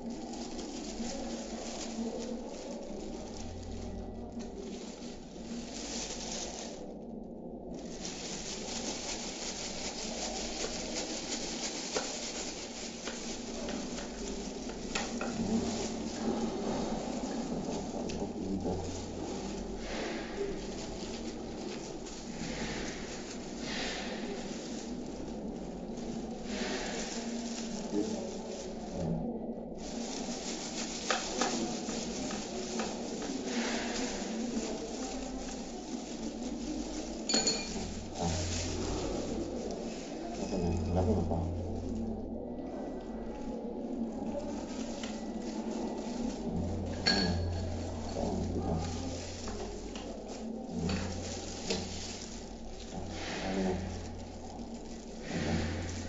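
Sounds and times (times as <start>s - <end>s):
plastic gloves rustling: 0.0s - 56.0s.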